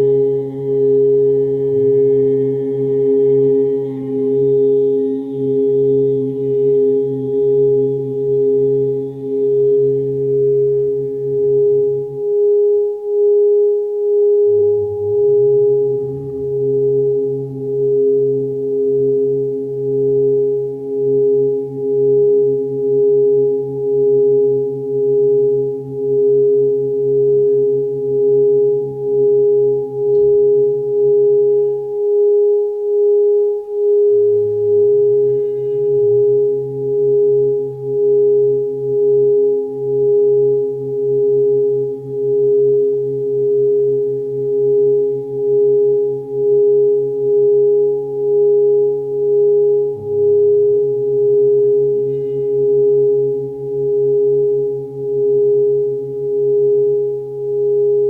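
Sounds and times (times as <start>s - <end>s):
low humming tones: 0.0s - 58.0s
ringing meditation tone: 0.0s - 58.0s.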